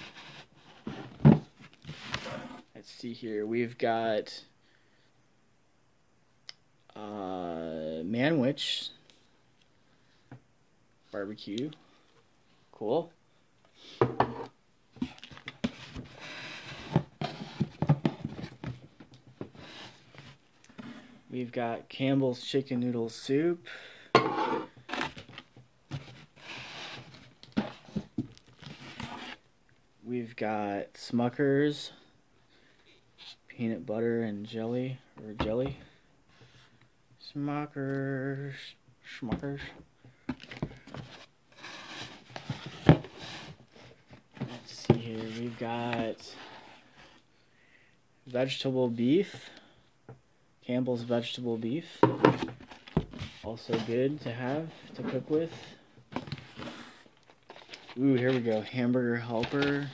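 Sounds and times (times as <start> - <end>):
rustling against cardboard: 0.0 - 2.7, 14.9 - 21.2, 24.7 - 29.4, 40.3 - 47.2, 52.0 - 59.9
rummaging in cardboard box: 40.3 - 46.9, 52.3 - 58.7, 59.4 - 59.9.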